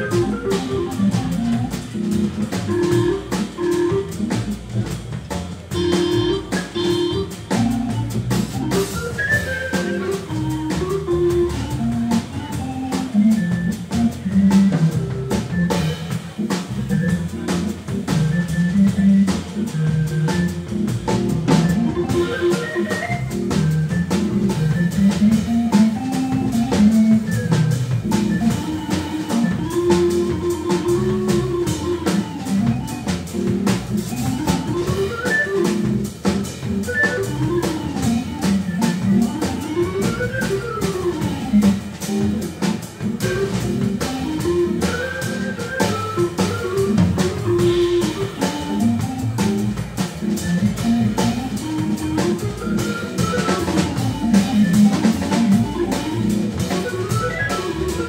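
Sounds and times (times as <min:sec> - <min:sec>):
drum kit with cymbals: 0:00.0 - 0:58.0
jazz lead line: 0:00.0 - 0:58.0
keyboard: 0:00.0 - 0:58.0
upright double bass: 0:00.0 - 0:58.0.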